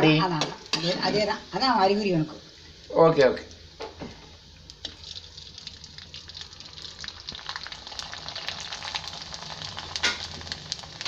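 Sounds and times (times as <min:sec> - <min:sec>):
food sizzling in hot oil: 0:00.0 - 0:11.0.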